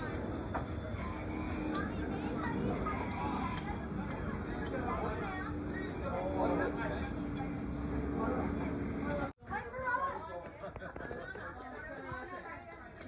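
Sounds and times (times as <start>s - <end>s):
people chattering: 0.0s - 13.0s.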